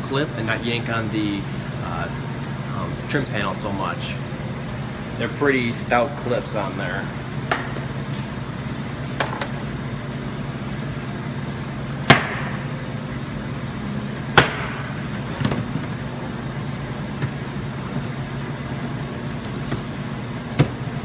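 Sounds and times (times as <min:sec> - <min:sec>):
steady low hum: 0:00.0 - 0:21.0.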